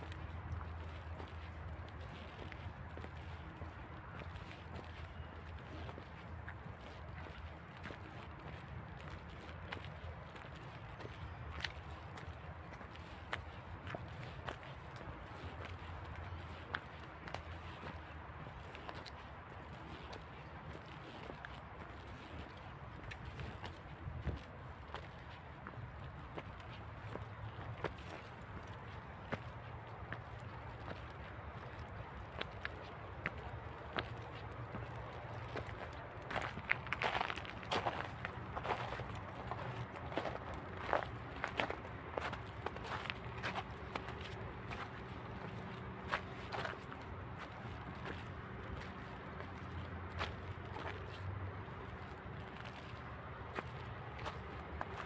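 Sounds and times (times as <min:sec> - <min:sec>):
footsteps on a path: 0:00.0 - 0:55.0.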